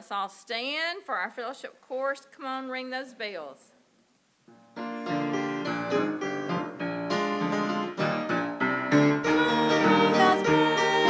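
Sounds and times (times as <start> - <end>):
lively piano chords: 4.5 - 11.0.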